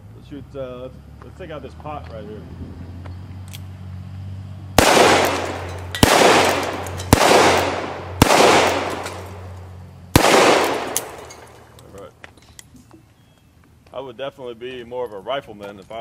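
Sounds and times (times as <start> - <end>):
revolver shots with long echo: 4.8 - 11.8.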